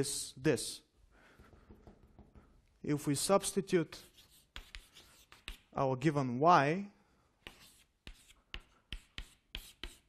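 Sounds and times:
pen scratching while writing: 0:04.0 - 0:05.7, 0:07.5 - 0:10.0.

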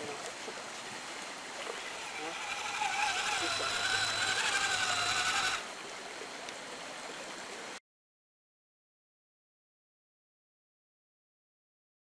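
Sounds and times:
stream water rushing: 0:00.0 - 0:07.8
electric motor whine: 0:01.7 - 0:05.7.

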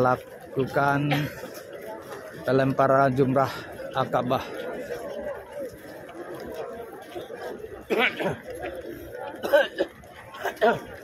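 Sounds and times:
distant crowd chatter: 0:00.0 - 0:11.0.

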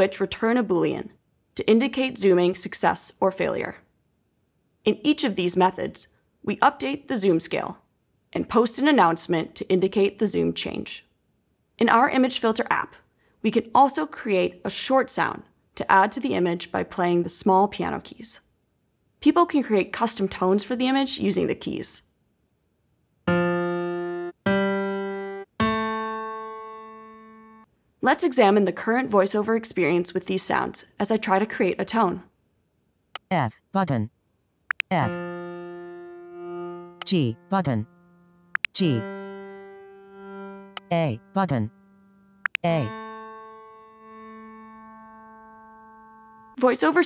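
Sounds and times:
piano tones: 0:23.3 - 0:27.7, 0:35.0 - 0:46.6.

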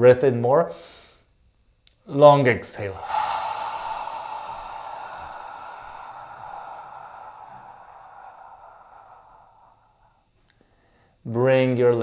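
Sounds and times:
person exhaling slowly: 0:02.8 - 0:11.2.

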